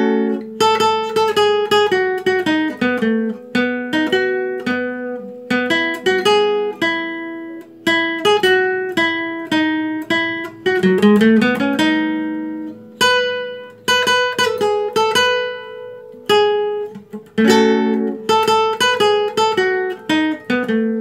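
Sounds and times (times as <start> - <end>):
classical guitar melody: 0.0 - 21.0.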